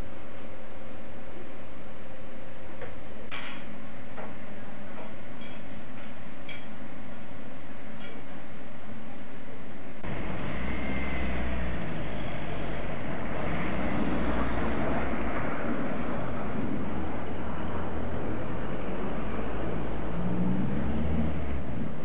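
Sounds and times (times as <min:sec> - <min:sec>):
loud low street rumble: 0:10.0 - 0:22.0.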